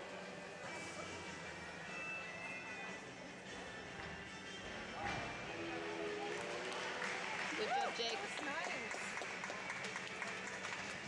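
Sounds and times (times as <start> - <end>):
indoor crowd noise: 0.0 - 11.0
hand clapping: 6.3 - 11.0.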